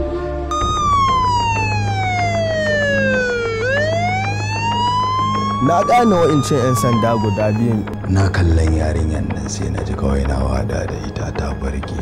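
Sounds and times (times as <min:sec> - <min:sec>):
police siren wailing: 0:00.5 - 0:08.1.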